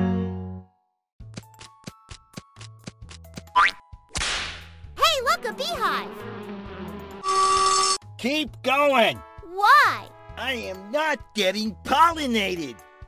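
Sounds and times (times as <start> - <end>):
light cartoon music: 0.0 - 13.0.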